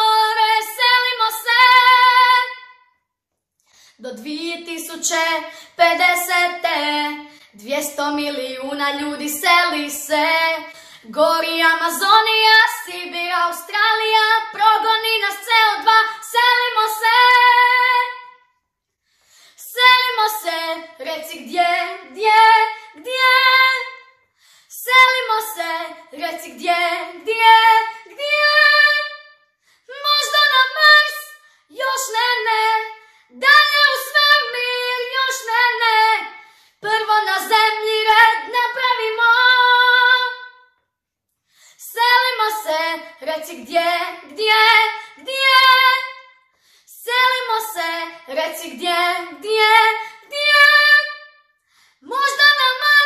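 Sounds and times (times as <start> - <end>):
girl singing: 0.0 - 3.0, 3.9 - 18.6, 19.5 - 40.8, 41.6 - 53.0.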